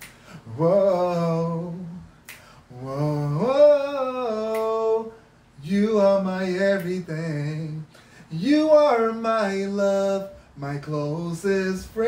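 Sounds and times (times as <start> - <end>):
finger snap: 0.0 - 0.4, 2.1 - 2.6, 3.5 - 5.1, 6.6 - 7.2
man singing unaccompanied: 0.0 - 12.0.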